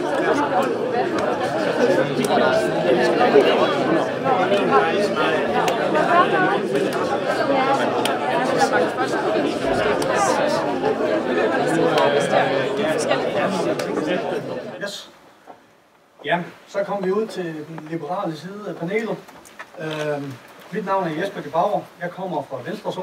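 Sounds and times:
chatter of young people: 0:00.0 - 0:22.0.

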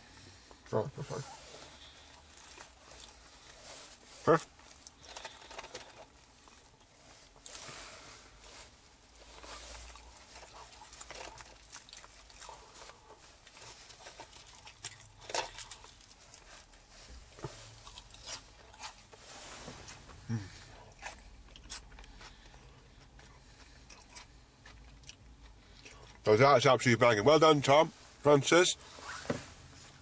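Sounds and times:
person chewing food: 0:01.4 - 0:26.2
person humming mmm: 0:20.2 - 0:20.6.

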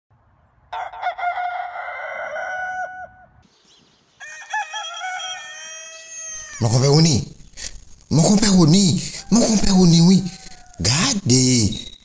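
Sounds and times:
rooster crowing: 0:00.7 - 0:03.4, 0:04.2 - 0:06.6, 0:09.1 - 0:11.0.

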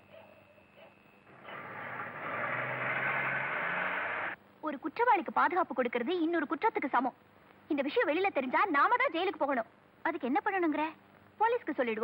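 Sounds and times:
vehicle engine: 0:01.3 - 0:04.4.

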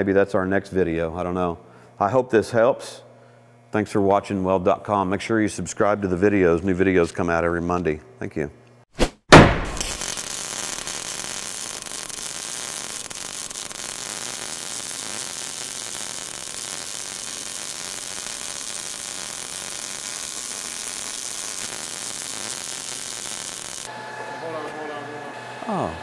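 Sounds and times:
welding arc crackling hiss: 0:09.6 - 0:23.9.

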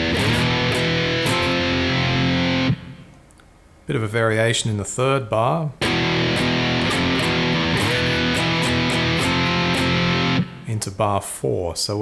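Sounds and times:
distorted electric guitar power chords: 0:00.0 - 0:03.1, 0:05.8 - 0:10.7.

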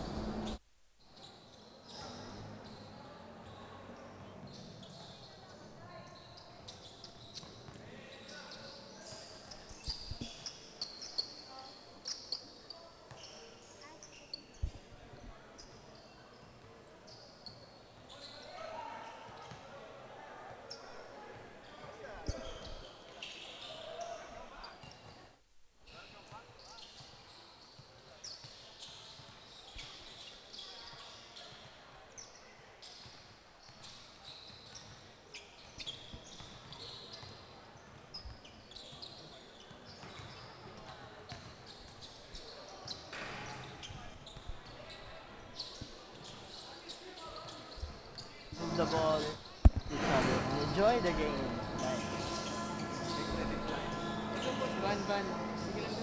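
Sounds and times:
indistinct voices: 0:48.6 - 0:56.0.

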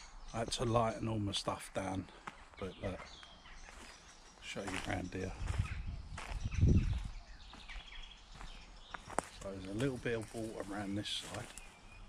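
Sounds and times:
footsteps on dirt path: 0:02.0 - 0:12.0.

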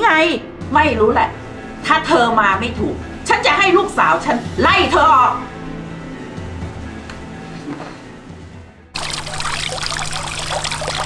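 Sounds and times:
fountain water splashing: 0:09.0 - 0:11.0.

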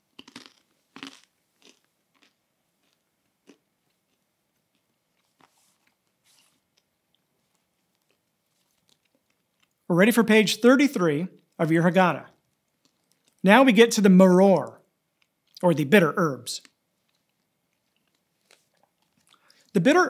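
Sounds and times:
crisp crunches of chewing: 0:00.1 - 0:09.9, 0:12.3 - 0:13.4, 0:16.6 - 0:19.7.

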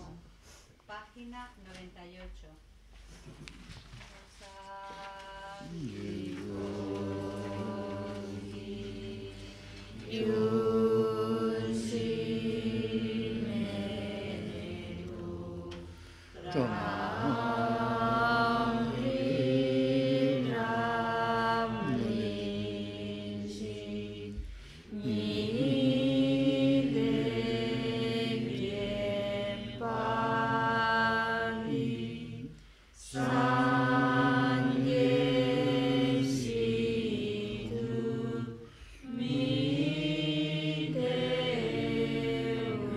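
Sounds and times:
voices chanting a prayer: 0:04.4 - 0:42.9.

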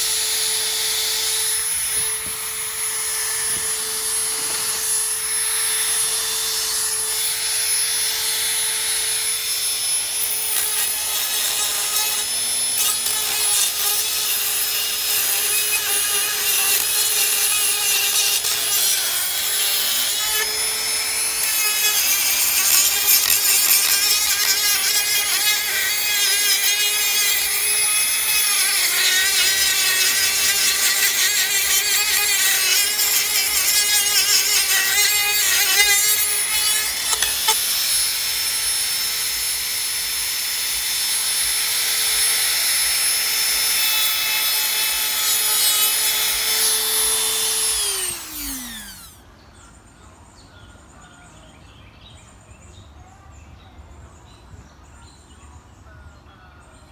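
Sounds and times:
abrasive rasping on wood: 0:00.0 - 0:39.3
rotary tool high whine: 0:00.0 - 0:49.2.

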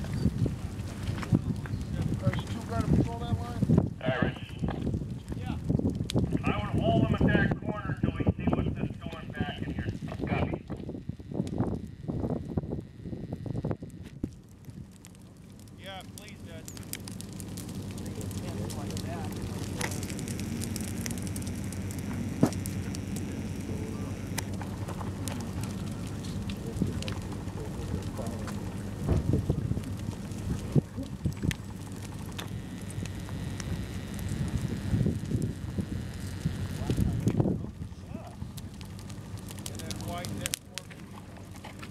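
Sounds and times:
sharp pops of fire: 0:00.0 - 0:07.5, 0:08.1 - 0:41.9
dry grass burning crackling: 0:00.0 - 0:41.9.

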